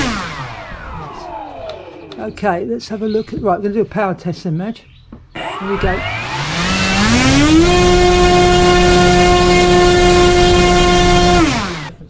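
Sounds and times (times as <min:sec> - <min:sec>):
electric motor propeller whine: 0:00.0 - 0:02.2, 0:05.4 - 0:12.0.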